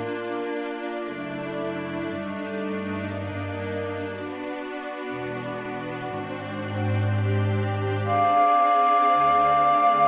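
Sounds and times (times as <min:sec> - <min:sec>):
flutes and strings sustained chords: 0:00.0 - 0:10.0.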